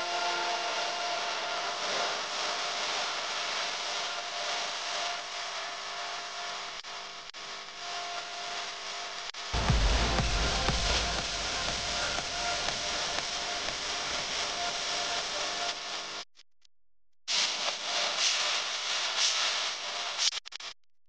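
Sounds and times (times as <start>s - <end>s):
background music: 9.6s - 15.4s.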